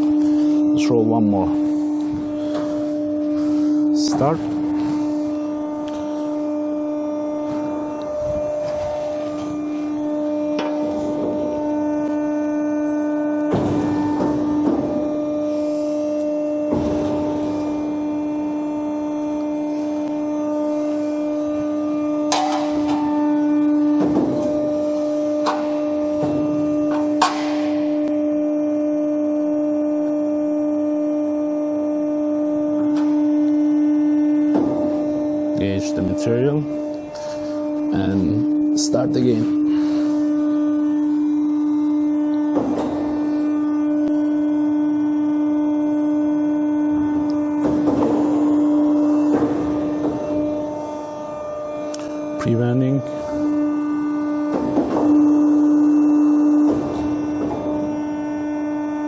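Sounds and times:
hydraulic machine hum: 0:00.0 - 0:59.0.

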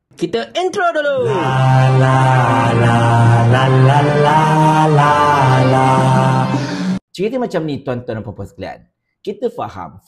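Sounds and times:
chant-like vocal music: 0:01.2 - 0:07.0
low drone: 0:01.2 - 0:07.0.

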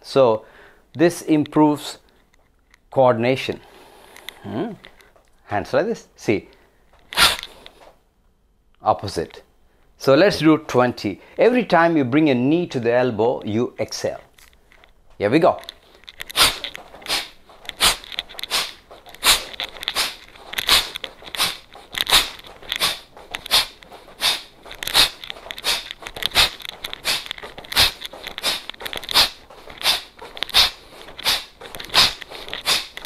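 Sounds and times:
forceful breaths out through nose: 0:16.3 - 0:33.0.

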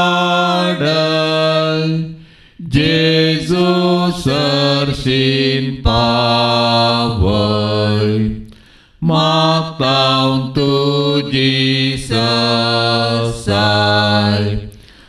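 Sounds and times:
unaccompanied devotional singing: 0:00.0 - 0:15.0.

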